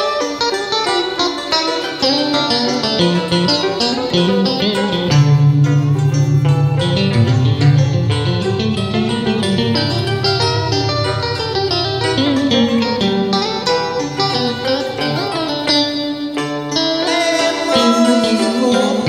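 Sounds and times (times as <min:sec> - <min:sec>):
plucked-string melody over beat: 0:00.0 - 0:19.0.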